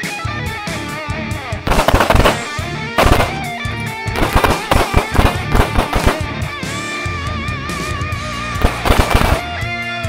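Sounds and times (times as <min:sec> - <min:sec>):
electric guitar music: 0:00.0 - 0:10.0
pistol shots: 0:01.7 - 0:06.5, 0:08.6 - 0:09.6.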